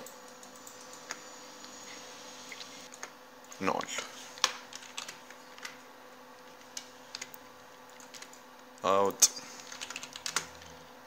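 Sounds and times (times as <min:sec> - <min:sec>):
faint steady hum: 0:00.0 - 0:11.0
computer keyboard and mouse clicks: 0:04.4 - 0:05.8, 0:06.5 - 0:08.4, 0:09.6 - 0:10.8.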